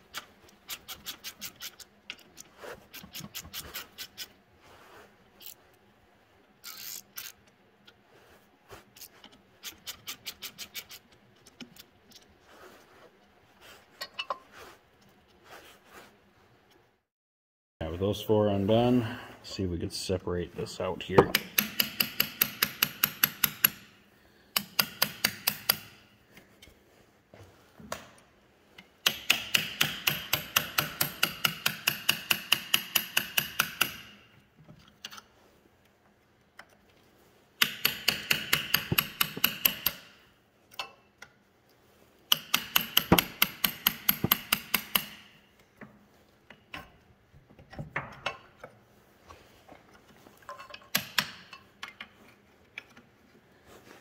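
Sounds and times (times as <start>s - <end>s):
hammer striking steel chisel: 21.2s - 23.9s, 24.6s - 26.0s, 29.0s - 34.2s, 37.6s - 40.2s, 42.3s - 45.4s.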